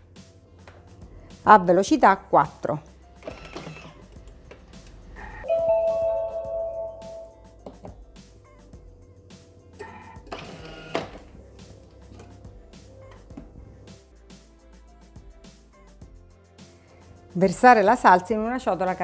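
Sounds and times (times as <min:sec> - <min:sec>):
background music: 0:00.0 - 0:19.0
kitchen appliance electronic chime: 0:05.4 - 0:07.4.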